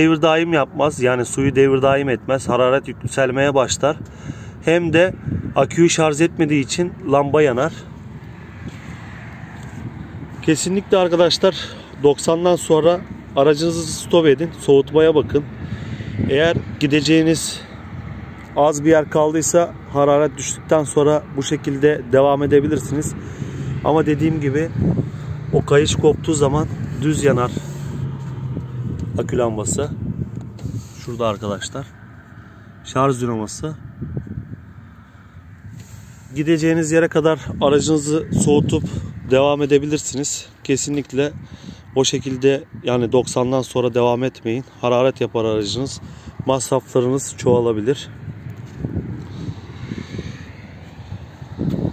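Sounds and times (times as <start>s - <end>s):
wind on microphone: 2.5s - 12.0s, 12.8s - 18.5s, 22.0s - 32.8s, 33.5s - 43.4s, 45.6s - 51.9s.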